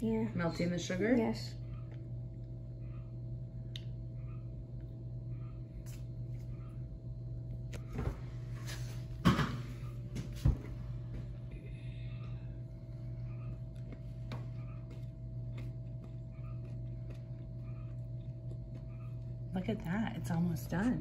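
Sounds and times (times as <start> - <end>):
low room tone hum: 0.0 - 21.0.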